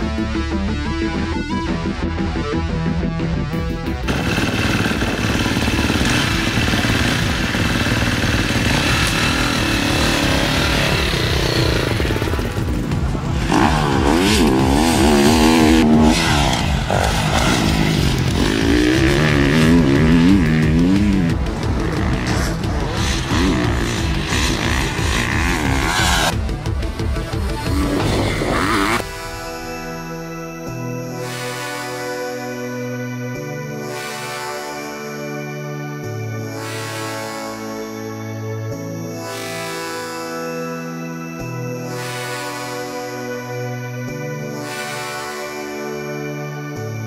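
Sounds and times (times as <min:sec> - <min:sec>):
background music: 0:00.0 - 0:47.0
motorcycle engine revving hard: 0:04.0 - 0:29.2.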